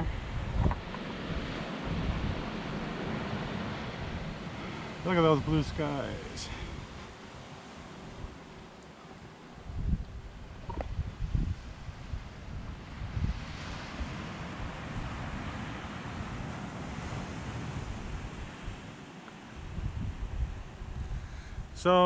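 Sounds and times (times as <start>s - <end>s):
wind and surf rushing: 0.0s - 22.0s
wind buffeting microphone: 0.0s - 22.0s.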